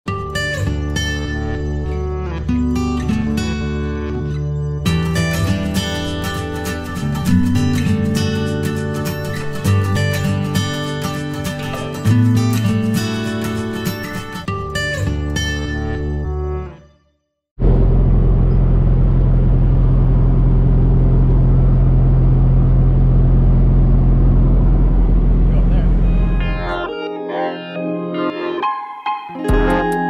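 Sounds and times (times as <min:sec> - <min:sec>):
guitar music: 0:00.1 - 0:16.8, 0:24.9 - 0:30.0
constant hum: 0:17.6 - 0:26.7.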